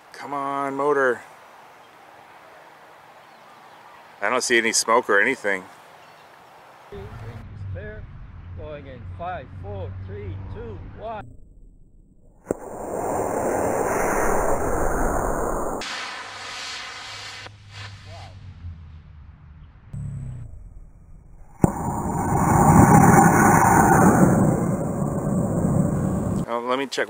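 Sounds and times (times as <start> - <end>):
rocket ignition pop: 12.3 - 18.0, 21.5 - 23.2
model rocket roar: 12.5 - 18.5, 21.3 - 26.4.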